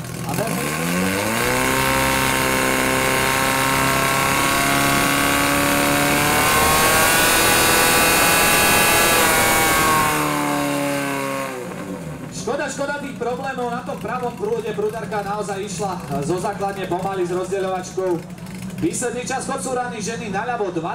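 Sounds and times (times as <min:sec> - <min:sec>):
pump engine running at high revs: 0:00.0 - 0:20.1.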